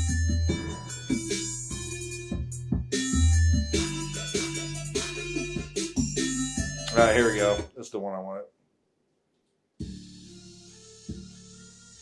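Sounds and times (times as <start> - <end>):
music through speakers: 0.0 - 7.7, 9.8 - 12.0.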